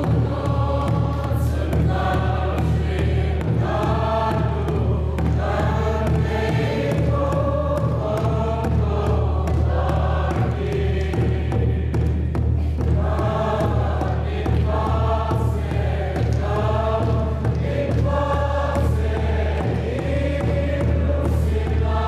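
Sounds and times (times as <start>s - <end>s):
congregation singing a hymn: 0.0s - 22.0s.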